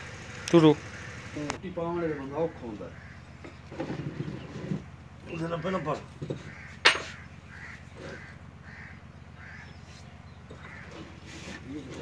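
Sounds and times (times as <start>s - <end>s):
bird short calls: 2.0s - 3.7s, 5.3s - 11.8s.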